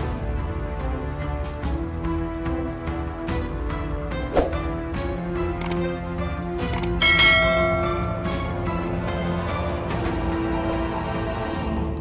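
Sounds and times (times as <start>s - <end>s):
background music: 0.0s - 12.0s
bright bell chime: 7.0s - 8.7s.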